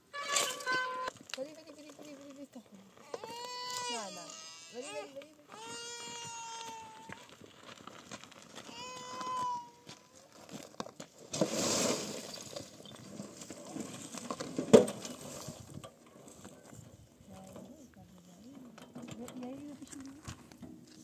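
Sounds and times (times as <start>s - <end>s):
stones falling from wheelbarrow: 0.2s - 2.3s, 7.4s - 16.5s.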